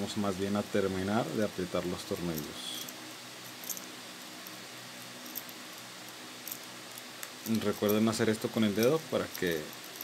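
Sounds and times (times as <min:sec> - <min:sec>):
steady low hum: 0:00.0 - 0:10.0
ball chain rattle: 0:02.1 - 0:10.0.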